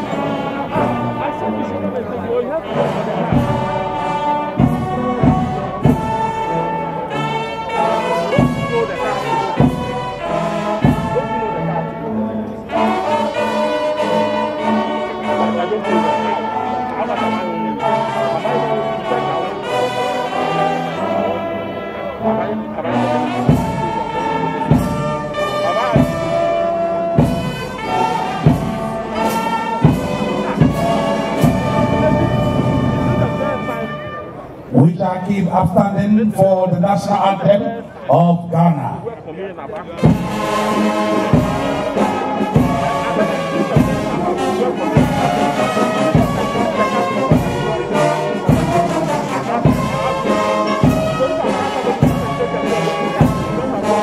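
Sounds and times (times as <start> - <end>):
brass band playing: 0.0 - 54.0
drum steady beat: 2.6 - 11.7, 23.3 - 34.0, 40.0 - 54.0.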